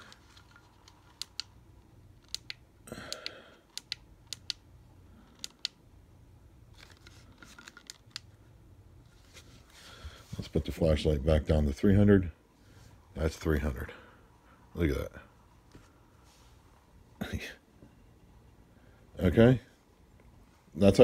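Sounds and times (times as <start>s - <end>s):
soft rustle: 9.0s - 10.6s, 15.5s - 16.8s.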